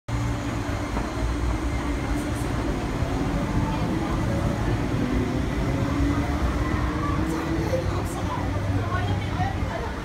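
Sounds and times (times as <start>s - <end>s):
electric train rumbling: 0.1s - 10.0s.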